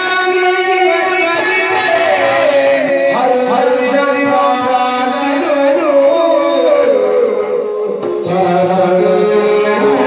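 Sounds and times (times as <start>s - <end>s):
high sliding vocal singing: 0.0s - 10.0s.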